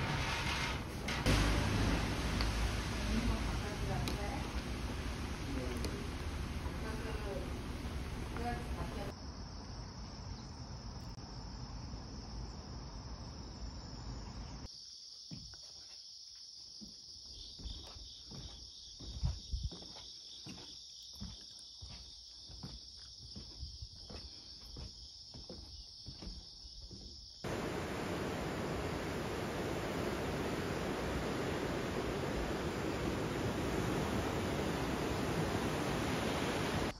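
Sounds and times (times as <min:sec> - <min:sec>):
low rumbling noise: 0:00.0 - 0:09.1, 0:27.5 - 0:36.9
insects chirring: 0:03.8 - 0:36.9.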